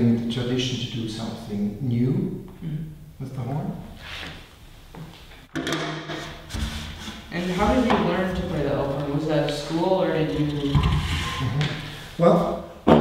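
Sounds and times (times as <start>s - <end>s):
man talking: 0.0s - 4.0s, 7.6s - 12.7s
wooden horn sections sliding: 6.1s - 12.2s.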